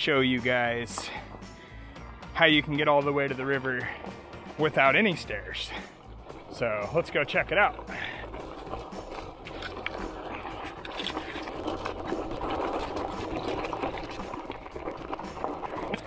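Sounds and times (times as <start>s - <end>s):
bicycle tyres crunching on gravel: 0.0s - 1.8s, 4.7s - 16.0s.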